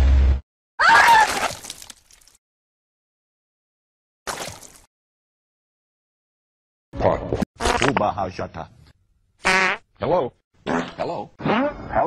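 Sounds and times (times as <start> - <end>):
fart sound effects: 7.1 - 8.0, 9.4 - 9.8, 10.6 - 12.0.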